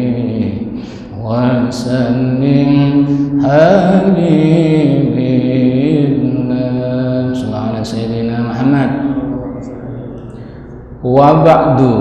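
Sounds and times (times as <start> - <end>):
man chanting through microphone: 0.0 - 12.0.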